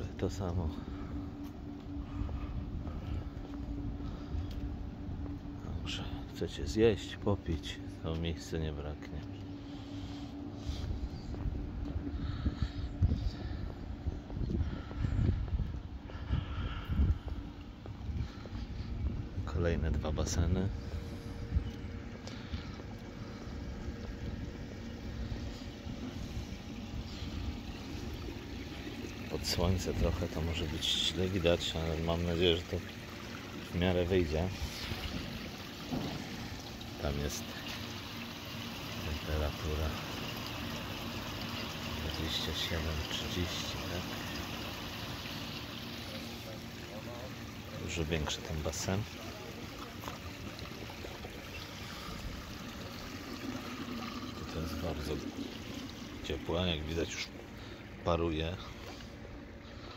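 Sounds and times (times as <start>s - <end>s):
irregular low rumble: 0.0s - 39.3s
steady low hum: 0.0s - 59.9s
faint footsteps: 1.4s - 5.6s, 13.0s - 19.5s.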